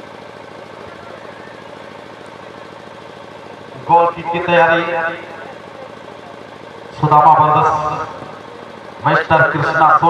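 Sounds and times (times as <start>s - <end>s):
man commentating: 3.8s - 5.6s, 7.0s - 8.3s, 9.0s - 10.0s.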